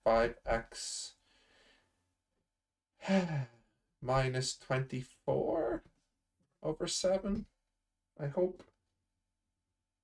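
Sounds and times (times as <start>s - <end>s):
man sighing: 3.0s - 3.7s.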